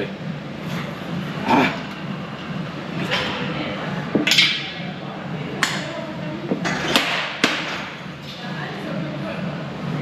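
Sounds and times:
gym background noise: 0:00.0 - 0:10.0.

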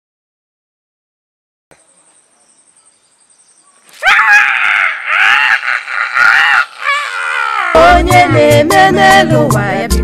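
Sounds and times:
woman screaming: 0:04.0 - 0:07.8.

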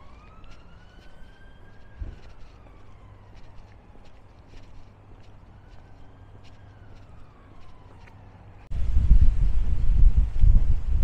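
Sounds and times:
distant emergency siren wailing: 0:00.0 - 0:10.1.

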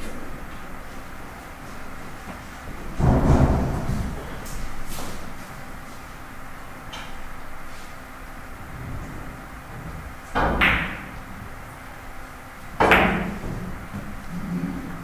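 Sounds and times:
billiard balls clacking: 0:09.7 - 0:11.4, 0:12.7 - 0:15.0.

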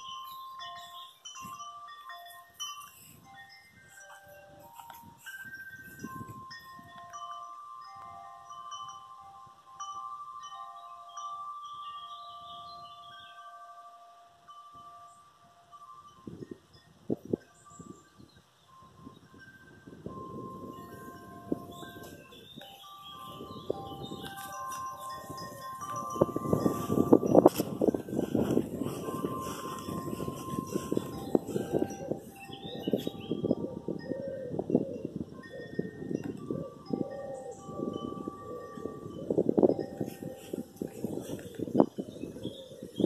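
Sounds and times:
chimes ringing: 0:00.0 - 0:43.0.

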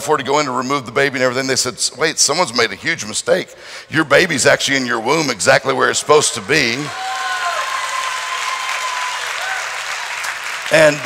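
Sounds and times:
congregation applauding: 0:06.6 - 0:11.0.

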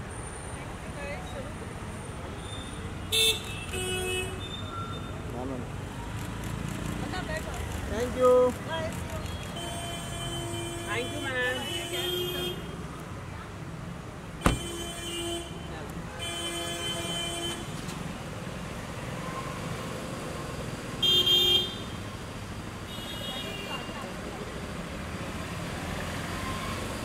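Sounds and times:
street traffic noise: 0:00.0 - 0:27.0
car door shutting: 0:14.4 - 0:14.8.

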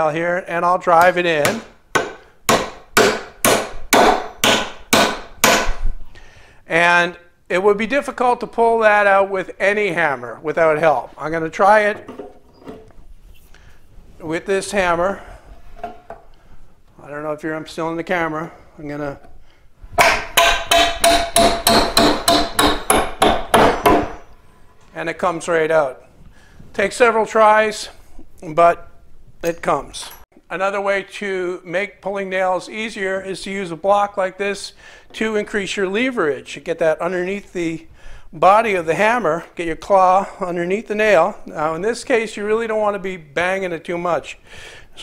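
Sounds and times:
hammer striking nail into wood: 0:01.0 - 0:05.8, 0:20.0 - 0:24.2.

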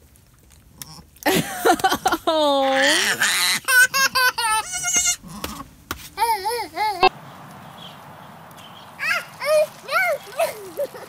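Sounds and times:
child giggling: 0:01.3 - 0:05.1, 0:06.2 - 0:07.1, 0:09.0 - 0:11.0
baby goat bleating: 0:02.6 - 0:05.6.

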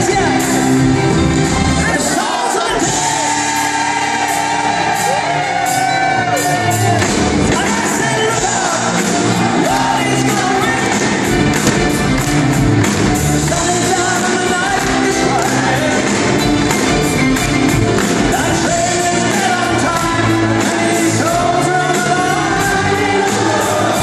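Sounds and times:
live rock band: 0:00.0 - 0:24.0
audience shouting and whooping: 0:01.8 - 0:12.2
person singing: 0:13.3 - 0:16.7, 0:18.1 - 0:24.0.

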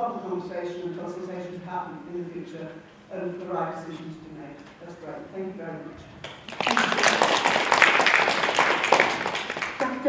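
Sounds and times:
audience applauding: 0:06.2 - 0:10.0.

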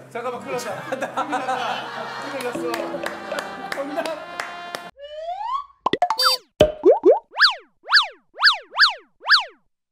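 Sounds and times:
background music: 0:00.0 - 0:04.9
boing pitch sweeps: 0:02.6 - 0:03.8.

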